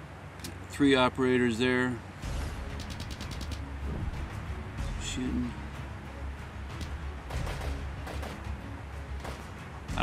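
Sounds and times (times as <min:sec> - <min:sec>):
rifle shots: 0:07.3 - 0:08.5.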